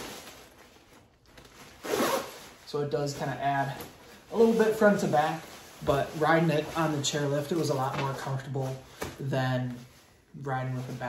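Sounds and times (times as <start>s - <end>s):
nylon clothing rustling: 0.0s - 11.0s.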